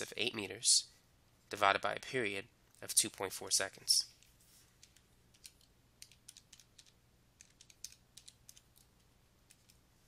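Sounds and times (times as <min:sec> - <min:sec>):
calculator buttons clicking: 0:04.8 - 0:08.9.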